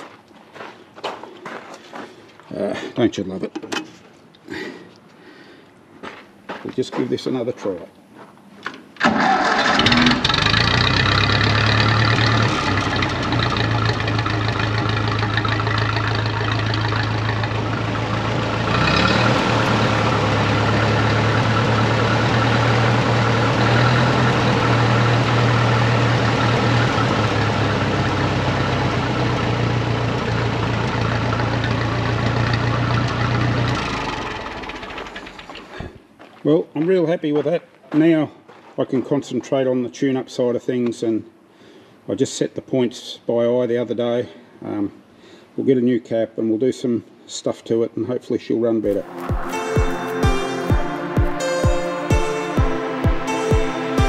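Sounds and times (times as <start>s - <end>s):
tractor engine idling: 9.0s - 35.8s.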